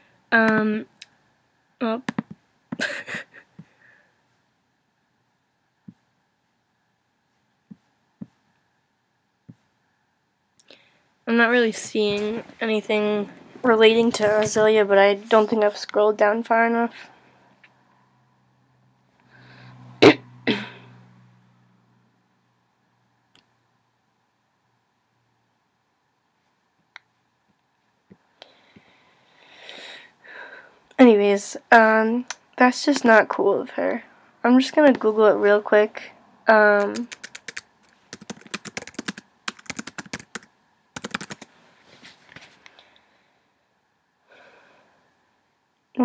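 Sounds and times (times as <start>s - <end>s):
keyboard typing: 2.0s - 2.4s, 36.8s - 41.5s
person coughing: 2.8s - 3.5s, 20.0s - 20.9s
breathy inhale: 19.2s - 19.9s, 28.4s - 30.8s, 44.3s - 45.1s.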